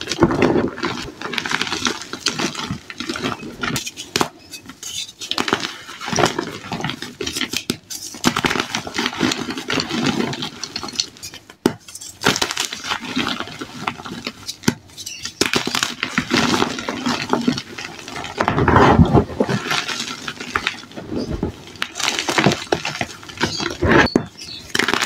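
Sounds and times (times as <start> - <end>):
chalk crunching and crackling: 0.0 - 25.0.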